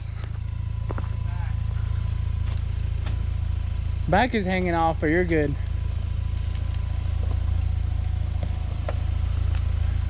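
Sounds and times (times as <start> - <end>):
truck engine near idle: 0.0 - 10.0.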